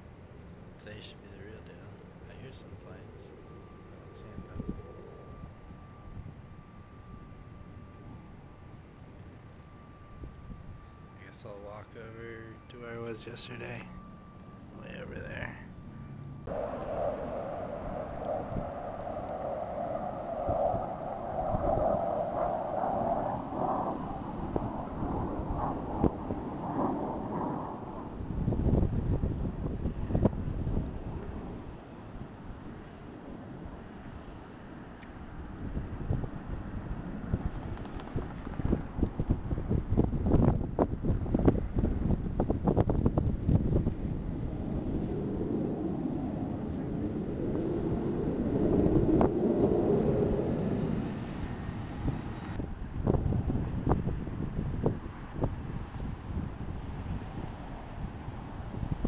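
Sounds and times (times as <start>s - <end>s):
distant jet aircraft rumbling: 0.0s - 59.0s
wind buffeting microphone: 0.8s - 13.9s, 14.6s - 59.0s.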